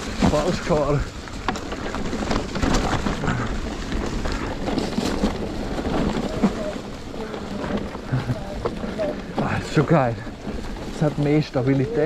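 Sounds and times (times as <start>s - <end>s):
bike clicks and rattles: 0.0s - 12.0s
bike tyres rolling over leaves: 0.0s - 12.0s.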